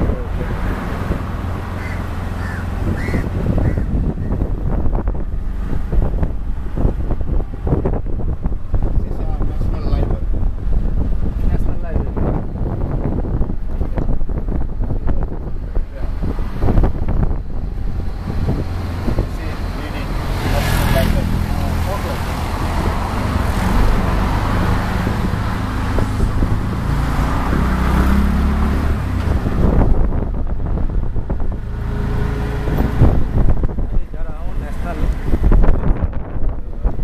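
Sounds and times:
auto-rickshaw engine running: 0:00.0 - 0:37.0
road and traffic noise: 0:00.0 - 0:37.0.

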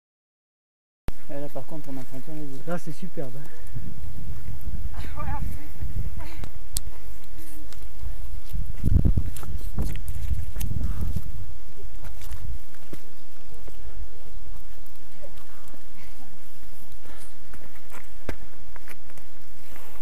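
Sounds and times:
footsteps on rocky trail: 0:01.9 - 0:20.0
wind rumble on microphone: 0:02.6 - 0:20.0.

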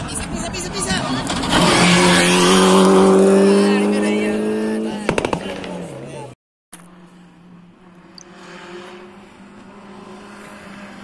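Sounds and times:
rally car engine at high revs: 0:01.3 - 0:06.0, 0:07.7 - 0:11.0
sharp cracks: 0:05.1 - 0:05.7.

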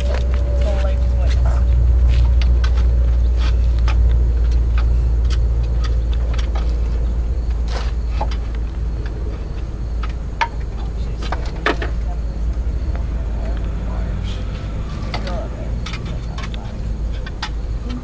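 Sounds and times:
hand tools clicking and tapping: 0:00.0 - 0:12.0, 0:14.6 - 0:18.0
steady low rumble: 0:00.0 - 0:18.0.

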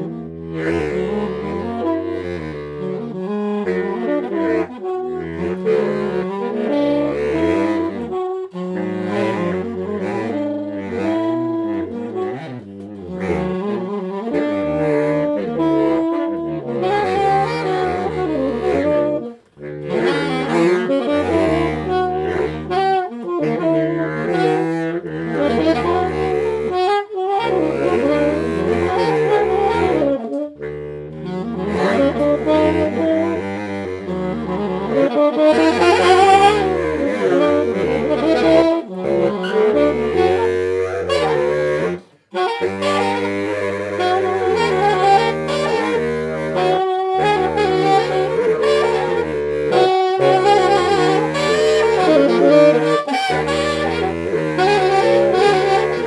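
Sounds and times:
saxophone duet: 0:00.0 - 0:56.0.

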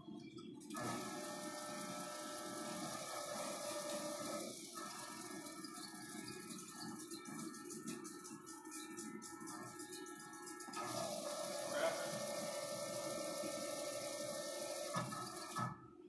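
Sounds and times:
electric drive whine: 0:00.0 - 0:16.0.

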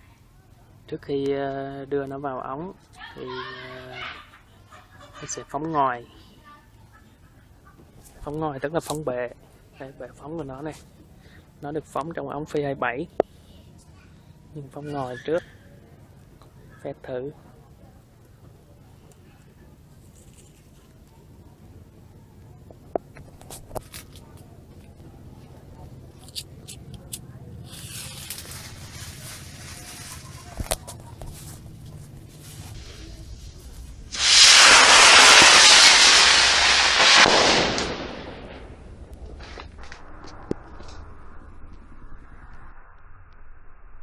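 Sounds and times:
sharp clicks and crackles: 0:22.7 - 0:25.1, 0:39.0 - 0:42.7
rocket motor rushing hiss: 0:32.7 - 0:38.8.

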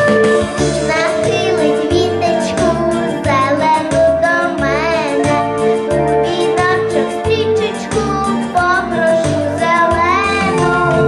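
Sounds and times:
instrumental music with pulsing bass: 0:00.0 - 0:11.0
girl singing: 0:00.8 - 0:11.0.

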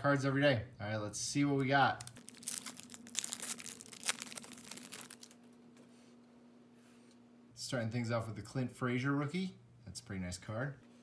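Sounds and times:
foil wrapper crinkling: 0:01.9 - 0:05.6.

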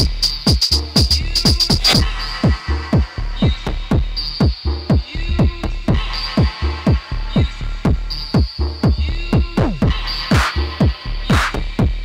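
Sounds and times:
deep synth bassline: 0:00.0 - 0:12.0
techno kick drum: 0:00.0 - 0:12.0.

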